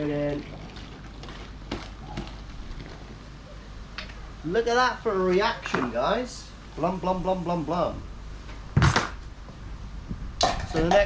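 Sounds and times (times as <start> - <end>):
liquid pouring into plastic bucket: 0.0 - 3.2
mixture fizzing: 0.0 - 3.4.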